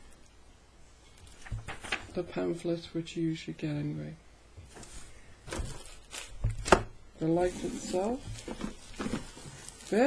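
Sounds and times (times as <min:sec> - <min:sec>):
plastic rustling: 0:01.0 - 0:02.2, 0:04.6 - 0:10.0.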